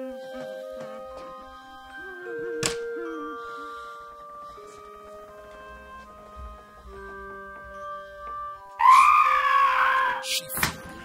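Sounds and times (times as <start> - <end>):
soft sustained music tones: 0.0 - 11.0
loud high-pitched scream: 8.8 - 10.4.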